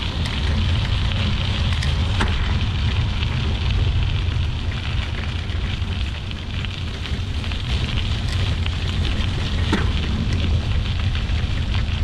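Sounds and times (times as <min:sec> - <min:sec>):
tyres crackling on gravel: 0:00.0 - 0:12.0
wind and ride vibration rumble: 0:00.0 - 0:12.0.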